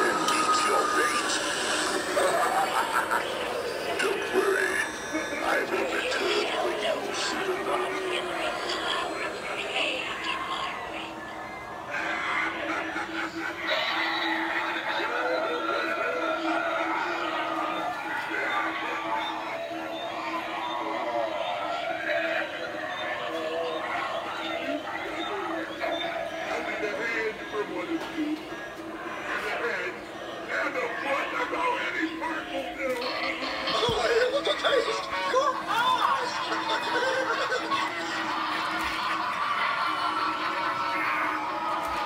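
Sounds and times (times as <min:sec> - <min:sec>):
steady hum: 0:00.0 - 0:13.7
indistinct voices talking: 0:00.0 - 0:42.0.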